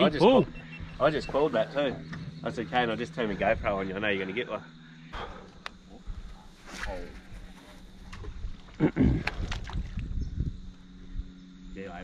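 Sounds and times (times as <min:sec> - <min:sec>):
steady low hum: 0:00.0 - 0:12.0
man clearing his throat: 0:08.8 - 0:09.3.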